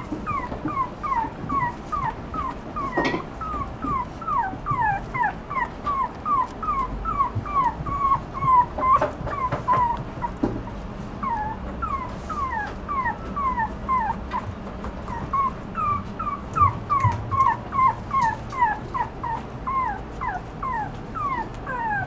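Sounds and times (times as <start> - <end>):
puppy whimpering: 0.0 - 22.0.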